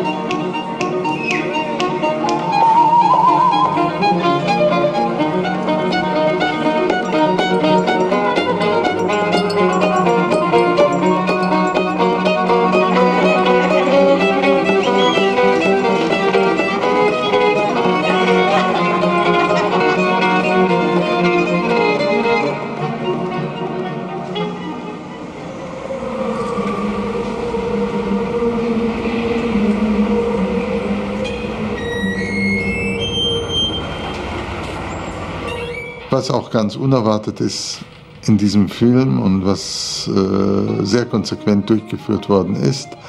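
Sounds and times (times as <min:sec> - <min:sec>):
held low drone note: 0:00.0 - 0:37.0, 0:38.3 - 0:43.0
violin melody: 0:00.0 - 0:37.2, 0:38.4 - 0:43.0.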